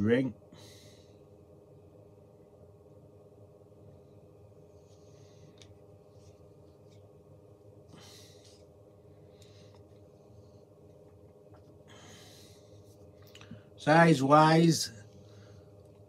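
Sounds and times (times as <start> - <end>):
steady low hum: 0.0 - 16.0
faint breath or handling noise: 7.8 - 10.8, 11.7 - 13.8.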